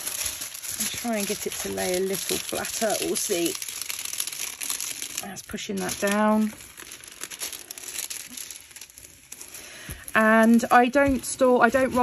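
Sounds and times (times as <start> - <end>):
plastic sheet crinkling: 0.0 - 12.0.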